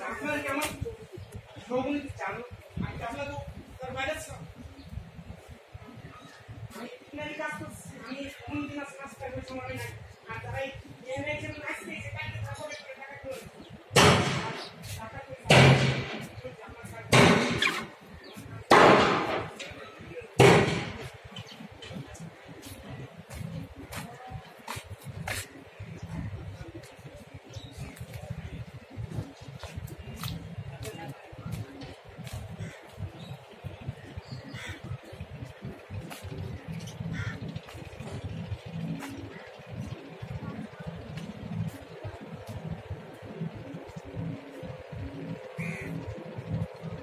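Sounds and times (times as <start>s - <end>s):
crow cawing: 34.5s - 35.0s, 37.1s - 37.5s, 45.6s - 46.0s.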